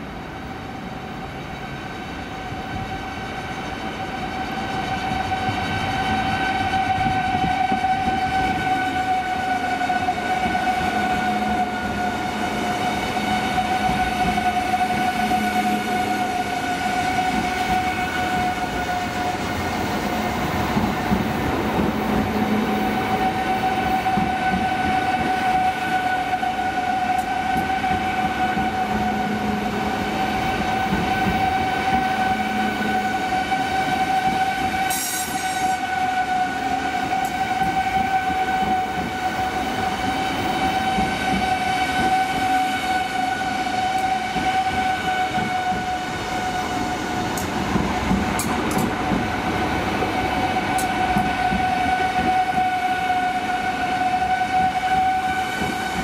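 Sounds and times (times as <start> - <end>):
train low rumble: 0.0 - 56.0
electric train high-pitched whine: 0.1 - 56.0.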